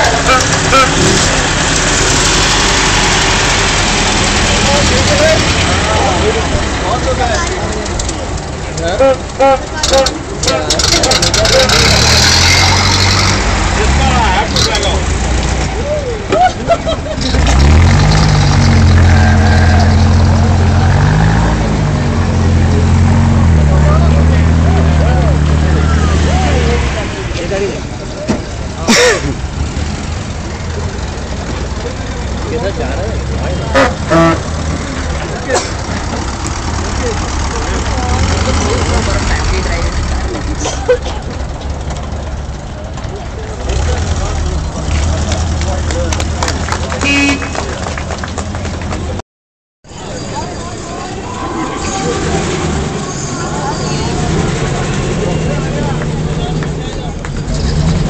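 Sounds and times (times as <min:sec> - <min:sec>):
car horn toots: 0:00.0 - 0:01.1, 0:18.9 - 0:20.2, 0:33.7 - 0:34.6, 0:47.0 - 0:47.8
crowd chatter: 0:00.0 - 0:49.2, 0:49.8 - 0:58.0
old car engines passing: 0:00.0 - 0:49.2, 0:49.9 - 0:58.0.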